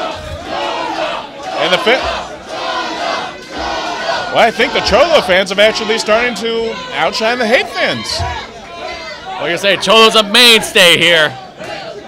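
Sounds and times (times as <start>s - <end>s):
crowd chanting and shouting: 0.0s - 12.0s.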